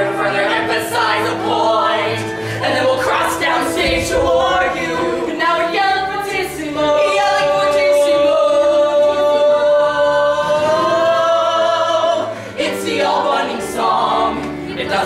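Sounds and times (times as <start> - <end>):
voices singing together: 0.0 - 15.0.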